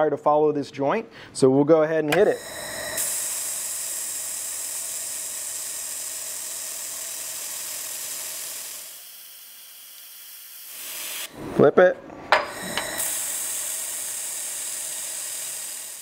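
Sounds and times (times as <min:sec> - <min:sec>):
laser welder hissing: 0:02.1 - 0:11.4, 0:12.6 - 0:16.0.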